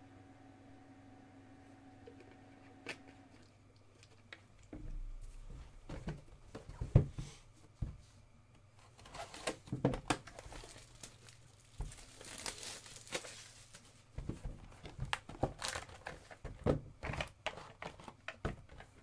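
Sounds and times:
plastic wrapping tearing: 9.0s - 13.8s, 15.1s - 16.3s
plastic crumpling: 10.1s - 14.0s, 14.7s - 16.4s.

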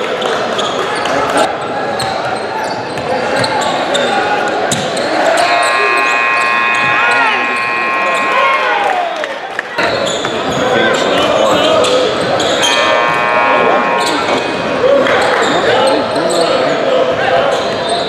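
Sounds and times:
spectators chattering: 0.0s - 18.0s
sneakers squeaking: 1.9s - 8.7s, 9.8s - 16.8s
steady several-toned sound: 5.2s - 9.2s, 12.5s - 15.9s.

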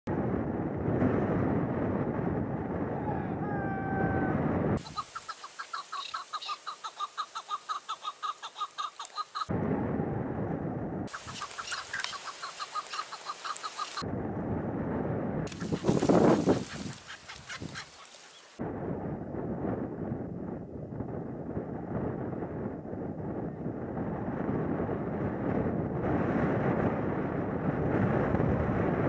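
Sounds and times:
wind buffeting microphone: 0.1s - 5.0s, 9.5s - 29.0s
partridge clucking: 11.1s - 14.0s.

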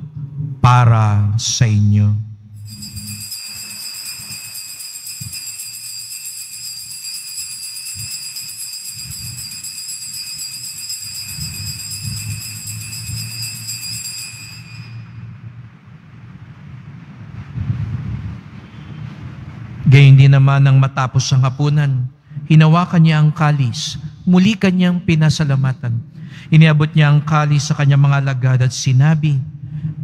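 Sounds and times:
altar bells ringing: 2.6s - 15.5s.

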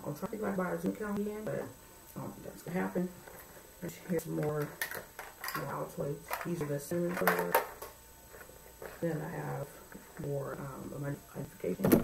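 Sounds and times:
woman's voice: 0.0s - 3.2s, 3.8s - 4.8s, 5.5s - 7.6s, 9.0s - 12.0s.

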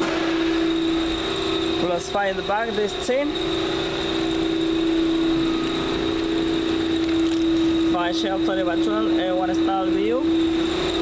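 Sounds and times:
faint high whine: 0.0s - 11.0s
steady machine hum: 0.0s - 11.0s.

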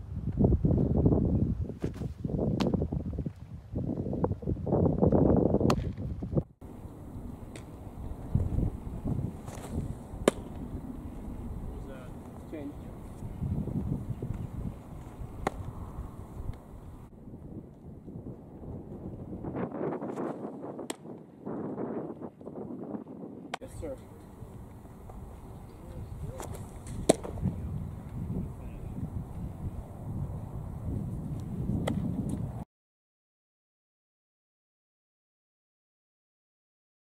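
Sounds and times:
wind buffeting microphone: 0.0s - 32.6s
sharp crack: 7.5s - 7.8s, 9.4s - 10.8s, 15.4s - 15.8s, 26.3s - 27.5s
baseball smacking into mitt: 9.4s - 10.6s, 15.4s - 15.7s, 26.4s - 27.5s, 31.8s - 32.1s.

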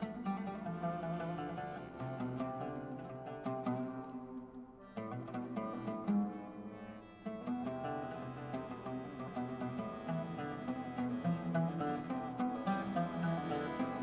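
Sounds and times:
accordion chords: 0.0s - 2.9s, 4.8s - 14.0s
oud plucked: 0.0s - 14.0s.

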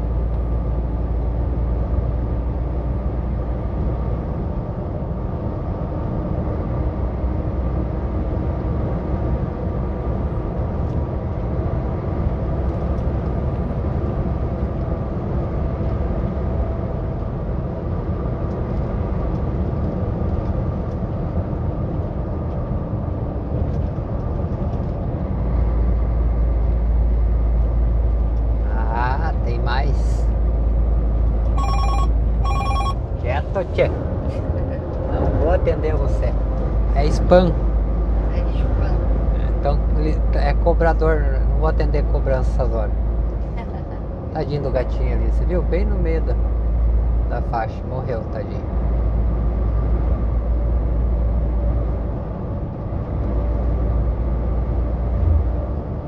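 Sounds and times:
truck engine and road noise: 0.0s - 56.0s
mobile phone ringing: 31.6s - 33.0s.

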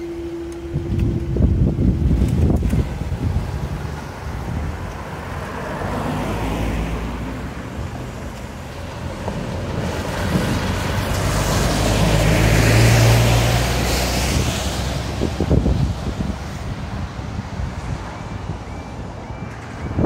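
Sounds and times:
cars passing: 0.0s - 20.0s
lorry diesel engine: 0.0s - 20.0s.

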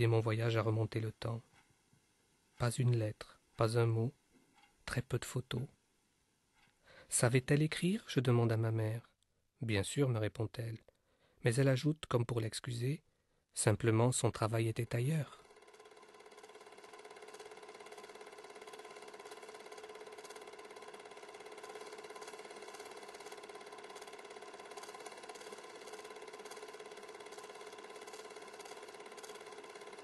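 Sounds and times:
faint machine hum: 0.0s - 30.0s.

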